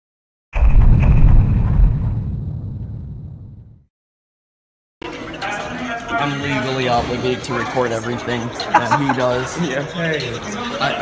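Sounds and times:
deep boom rumbling: 0:00.6 - 0:03.9.

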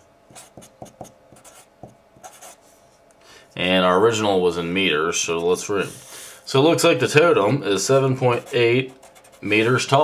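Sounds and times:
marker writing on paper: 0:00.3 - 0:02.6.

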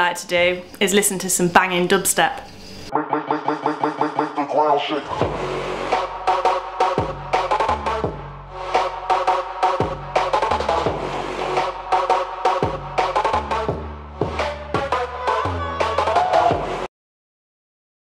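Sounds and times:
dubstep electronic music: 0:02.9 - 0:16.9.

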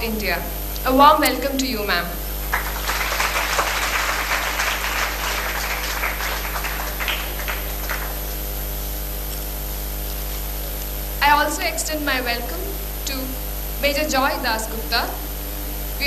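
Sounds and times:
steady electrical hum: 0:00.0 - 0:16.0
audience applauding: 0:02.4 - 0:08.6.

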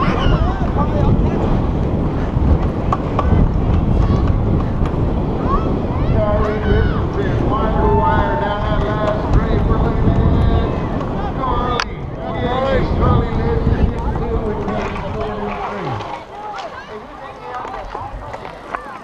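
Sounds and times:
steady low rumble: 0:00.0 - 0:16.0
wind buffeting microphone: 0:00.0 - 0:19.0
faint voices calling out: 0:03.0 - 0:19.0.

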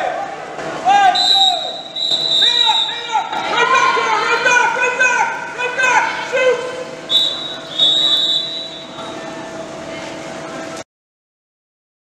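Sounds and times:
echoing pool hall noise: 0:00.0 - 0:10.8
referee's whistle blasts: 0:01.1 - 0:03.2, 0:07.1 - 0:09.0.

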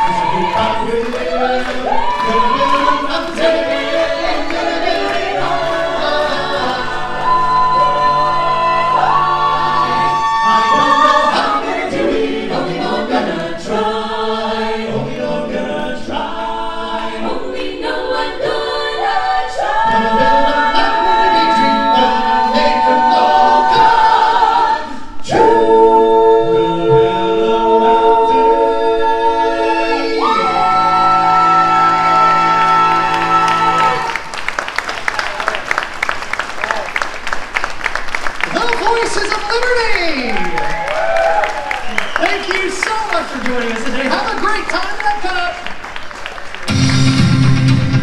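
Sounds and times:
a cappella group singing in harmony: 0:00.0 - 0:34.3.

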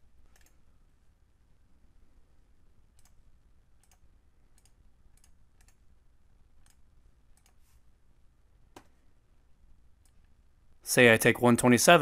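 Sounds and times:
mouse and keyboard clicks: 0:00.3 - 0:00.6, 0:02.9 - 0:03.2, 0:03.8 - 0:05.8, 0:06.6 - 0:07.7
person speaking: 0:10.8 - 0:12.0.

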